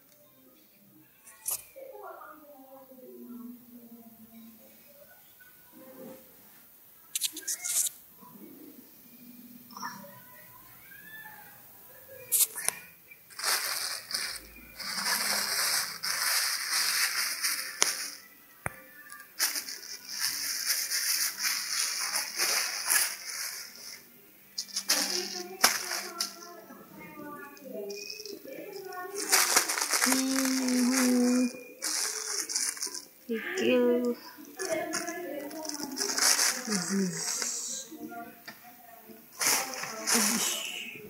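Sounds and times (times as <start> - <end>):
plastic bags crinkling: 12.4 - 18.3, 19.4 - 24.0, 24.6 - 26.4, 28.8 - 33.2, 34.6 - 37.8, 39.4 - 40.8.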